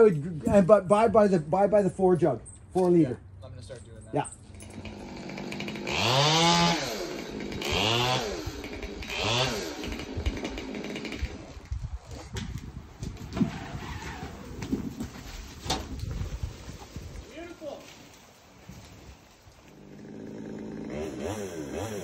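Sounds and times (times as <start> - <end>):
chainsaw revving: 4.5 - 11.8, 19.7 - 22.0.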